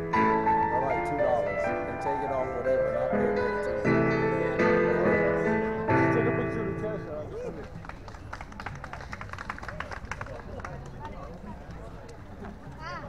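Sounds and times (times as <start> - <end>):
keyboard chord ringing: 0.0 - 7.3
crowd voices: 0.0 - 13.0.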